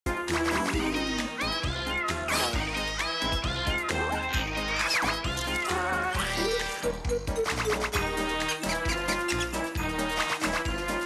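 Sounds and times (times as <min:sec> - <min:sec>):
upbeat cartoon music: 0:00.1 - 0:11.0.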